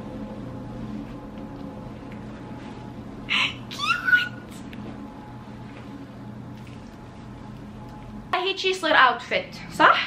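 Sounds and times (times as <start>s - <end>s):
woman's high-pitched excited squeal: 3.3s - 4.4s.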